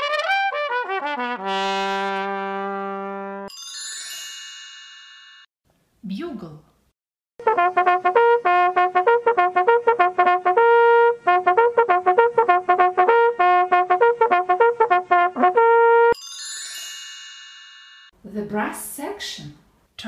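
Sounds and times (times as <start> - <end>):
high bright chime: 3.5 - 5.5, 16.2 - 18.2.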